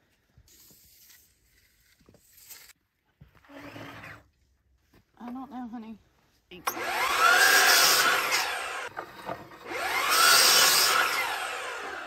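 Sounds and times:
wooden board scraping: 8.9s - 9.7s.

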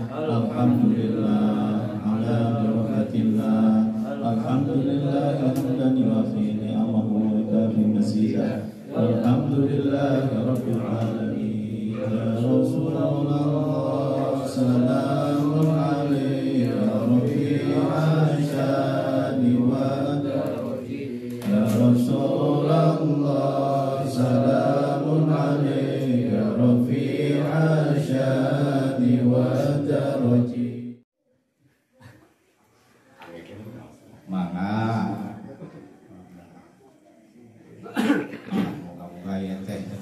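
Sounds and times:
men chanting in unison: 0.0s - 31.0s.

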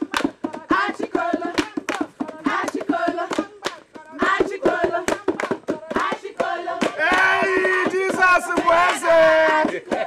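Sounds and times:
group singing: 0.0s - 10.0s
rhythmic hand clapping: 0.0s - 10.0s.

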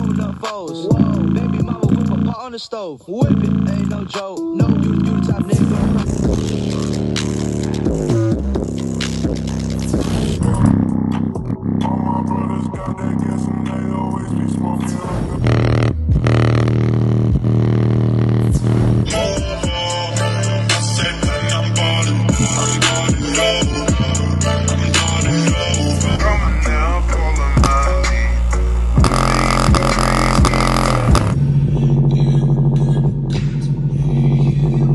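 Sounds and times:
deep bass note from speaker: 4.6s - 34.9s.

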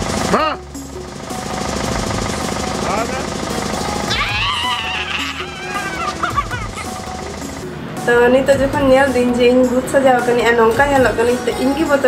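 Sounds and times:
fast steady rattle: 0.0s - 7.7s.

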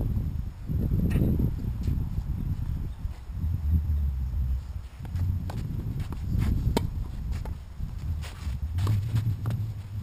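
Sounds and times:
low steady rumble: 0.0s - 10.0s
ball and shoe knocks: 5.0s - 7.6s
racket striking ball: 5.0s - 7.6s.

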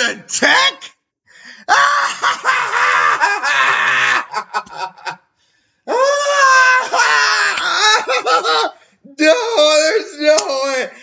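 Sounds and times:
man's falsetto wail of laughter: 1.7s - 5.1s.

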